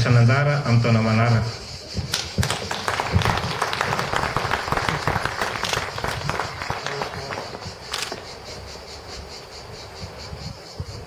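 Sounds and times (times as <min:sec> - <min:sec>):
crowd applauding: 0:02.1 - 0:08.2.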